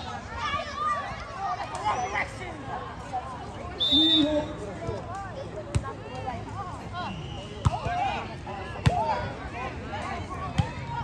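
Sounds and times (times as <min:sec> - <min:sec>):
voices of players: 0:00.0 - 0:11.0.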